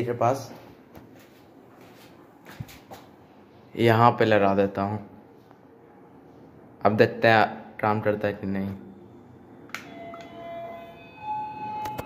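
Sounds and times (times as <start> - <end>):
distant doorbell chime: 9.8 - 12.0.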